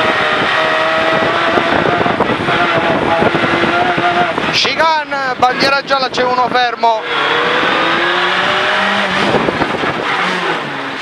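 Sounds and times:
car engine revving under load: 0.0 - 11.0
tyre and road noise: 0.0 - 11.0.

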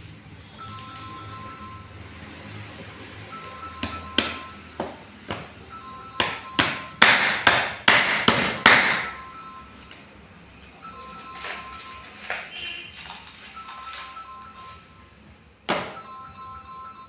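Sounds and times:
hammer striking wooden box: 6.2 - 9.1.

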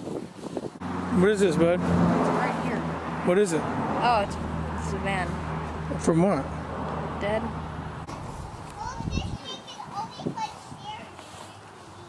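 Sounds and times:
wind rumble on microphone: 0.0 - 4.5, 8.0 - 11.0.

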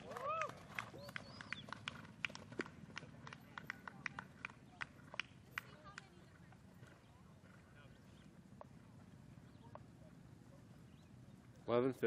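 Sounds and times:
horse hoofbeats on dirt: 0.0 - 9.9.

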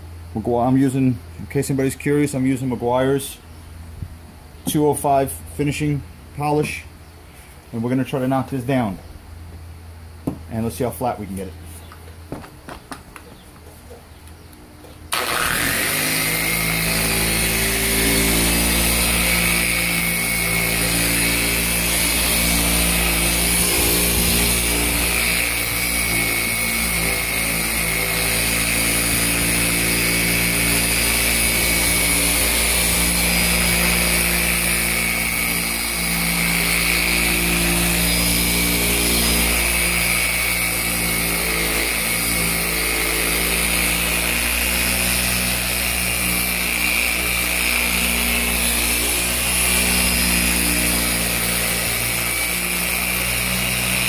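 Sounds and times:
orbital polisher running: 15.1 - 54.0.

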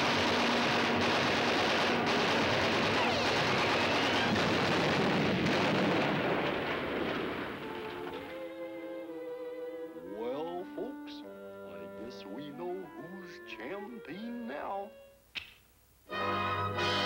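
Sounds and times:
cartoon gunfire: 0.0 - 7.2
cartoon explosions: 0.0 - 8.2.

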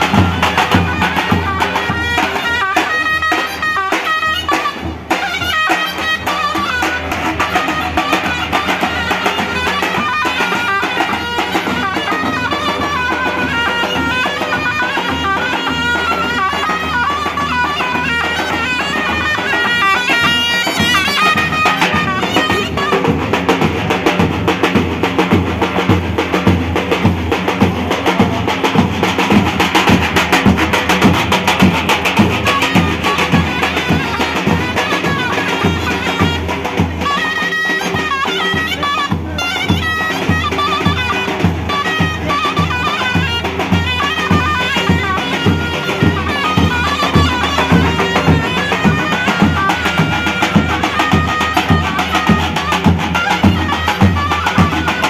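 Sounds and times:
shrill reedy pipe melody: 0.0 - 25.7, 26.4 - 55.0.

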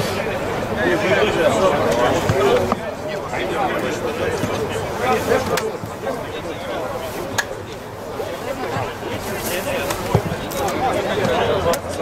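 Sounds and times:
indistinct talk of voices: 0.0 - 12.0.

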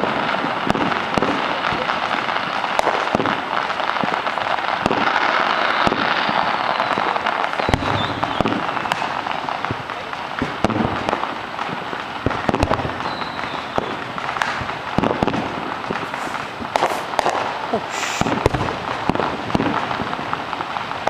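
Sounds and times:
fireworks bangs: 0.0 - 21.0
fireworks crackling: 0.0 - 21.0
falling firework whistle: 5.1 - 9.2, 12.4 - 14.6, 16.0 - 18.5.

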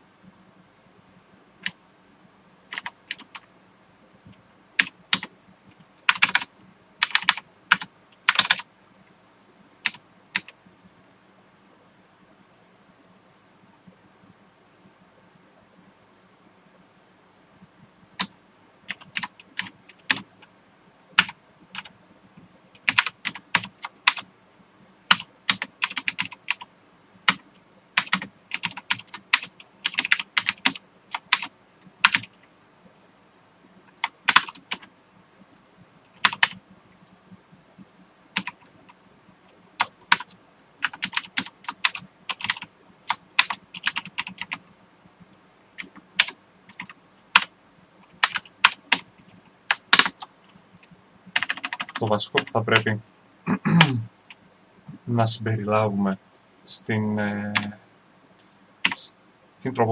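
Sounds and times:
typing on computer keyboard: 2.7 - 3.5, 4.8 - 5.3, 6.0 - 8.7, 9.8 - 10.6, 18.2 - 20.3, 21.2 - 21.9, 22.8 - 24.2, 25.1 - 26.7, 28.0 - 32.4, 34.0 - 34.9, 36.2 - 36.6, 38.4 - 38.7, 39.8 - 44.7, 45.8 - 49.1, 49.7 - 50.3, 51.3 - 52.9, 58.8 - 59.1.

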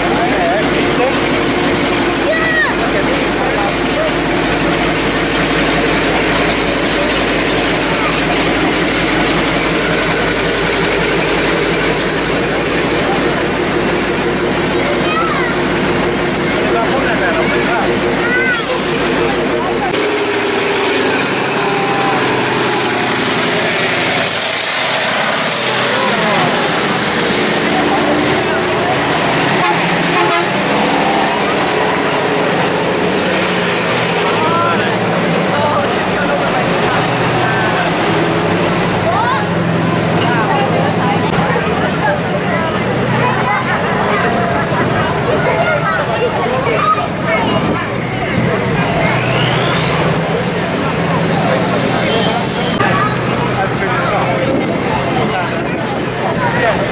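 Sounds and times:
crowd chatter: 0.0 - 56.9
lighter vehicle engine noise: 0.0 - 56.9
tank engine deep drone: 0.0 - 56.9.

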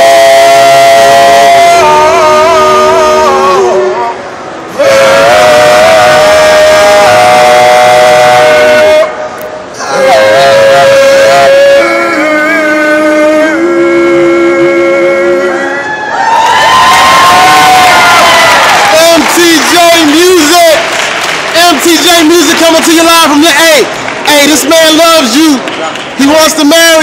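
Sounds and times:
men singing in harmony: 0.0 - 9.2, 9.8 - 15.9
crowd cheering and whooping: 15.7 - 21.3.

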